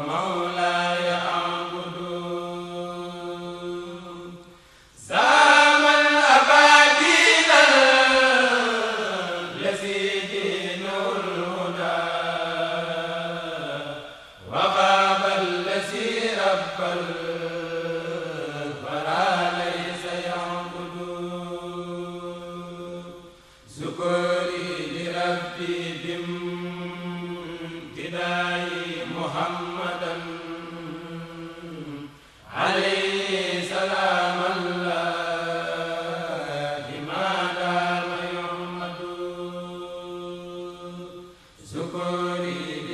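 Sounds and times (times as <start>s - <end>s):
men chanting unaccompanied: 0.0s - 42.9s.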